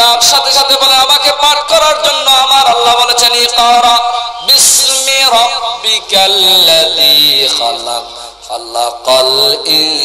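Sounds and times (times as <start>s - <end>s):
man chanting through loudspeaker: 0.0s - 10.0s.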